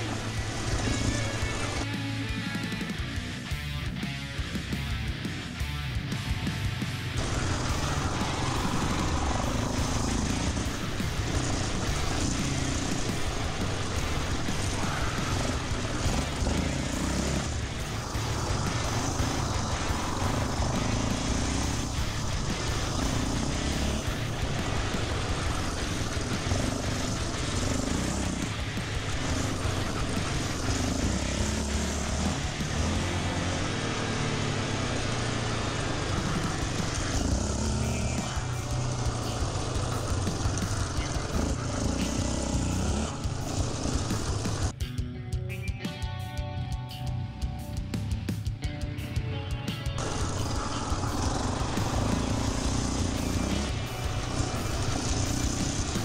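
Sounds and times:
quad engine revving: 0.0s - 44.8s, 50.0s - 56.0s.

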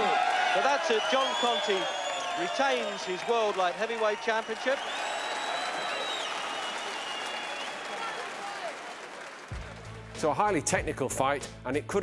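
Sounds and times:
crowd calling out: 0.0s - 9.3s
crowd clapping: 0.0s - 10.4s
whistle: 0.9s - 3.1s, 4.4s - 8.2s.

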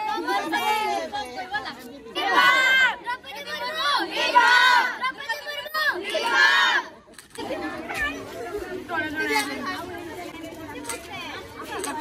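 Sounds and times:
lively mixed chatter: 0.0s - 12.0s
shouts in unison: 2.2s - 6.9s.

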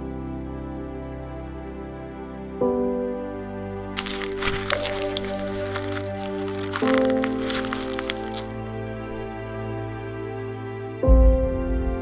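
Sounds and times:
background music: 0.0s - 12.0s
paper crumpling: 4.0s - 9.3s.

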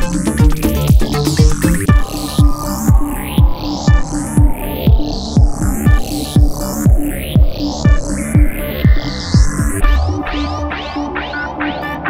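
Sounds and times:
rising synth sweeps: 0.0s - 8.9s
deep kick drum: 0.0s - 10.2s
electronic dance music: 0.0s - 12.0s.

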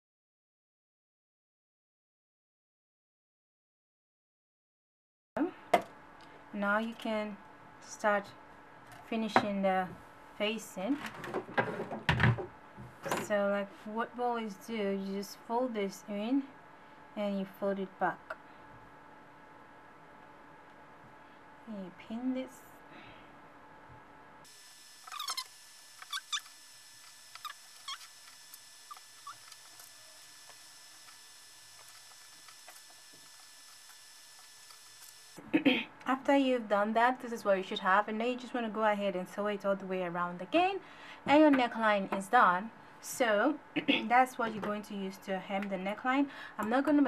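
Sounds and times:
faint high squeaks: 25.0s - 26.5s, 27.4s - 28.2s.

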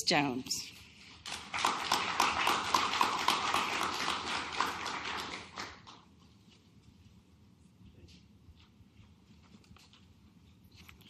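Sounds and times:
audience applauding: 1.3s - 6.1s.

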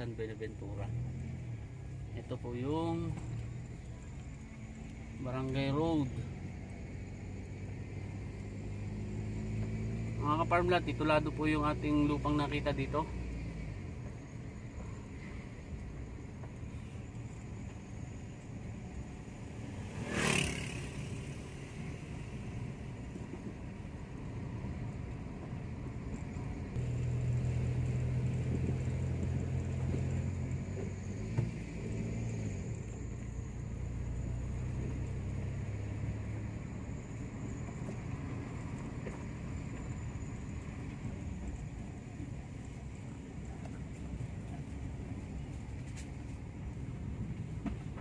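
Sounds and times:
car engine and tyre noise: 0.0s - 48.0s.

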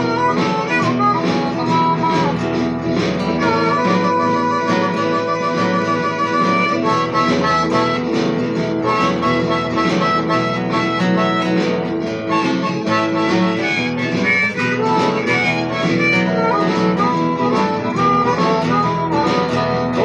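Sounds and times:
acoustic guitar blues playing: 0.0s - 20.0s.

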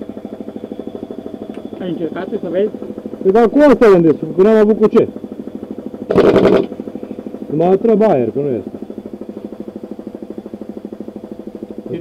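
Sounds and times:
air compressor pulsing: 0.0s - 12.0s.

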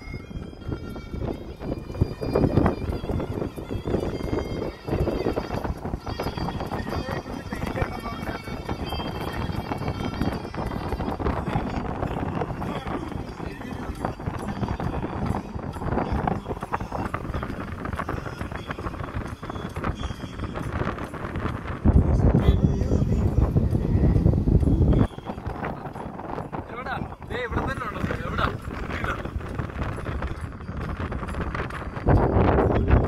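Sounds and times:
vehicle rumbling and knocking: 0.0s - 33.0s
voices: 2.2s - 21.5s, 22.2s - 30.6s.

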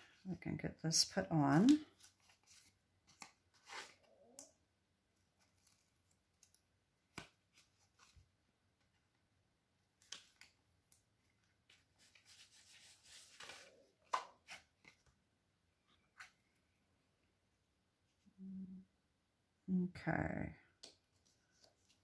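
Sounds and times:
paper and tape rustling: 1.4s - 4.0s, 11.7s - 15.0s.

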